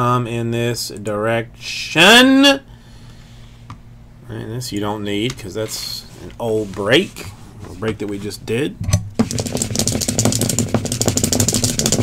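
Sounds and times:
dice rattling in hands: 9.2 - 12.0.

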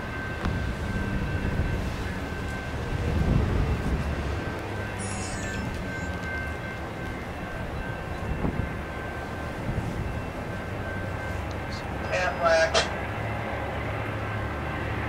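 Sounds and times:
train rumbling: 0.0 - 15.0.

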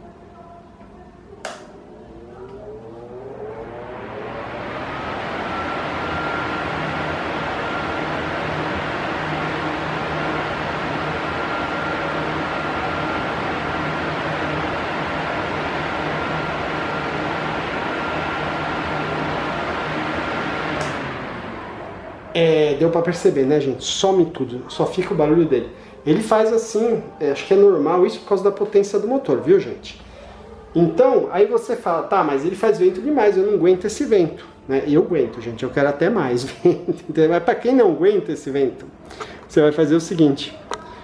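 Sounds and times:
electric fan rushing air: 1.2 - 41.0
electric fan switch click: 1.4 - 1.8, 20.7 - 21.1.

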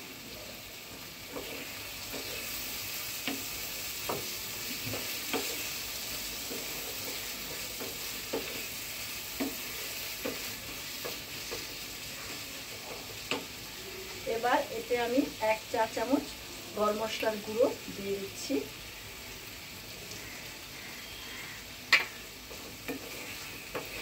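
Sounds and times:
frying sizzle: 0.0 - 24.0
wooden spatula scraping pan: 22.5 - 24.0.

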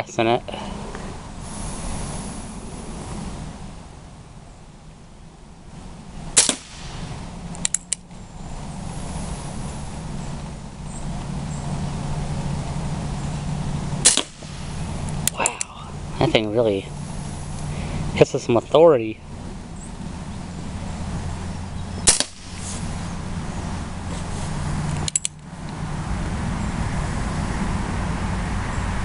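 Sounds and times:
air revolver shots: 6.4 - 7.9, 14.0 - 15.7, 22.0 - 22.8
revolver hammer cocking clicks: 7.5 - 8.0, 25.0 - 25.4.

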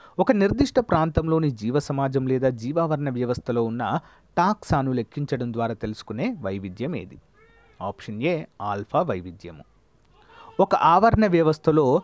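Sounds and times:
man speaking: 0.2 - 9.7, 10.3 - 12.0
faint high wavering cry: 6.3 - 7.9, 9.6 - 11.0.

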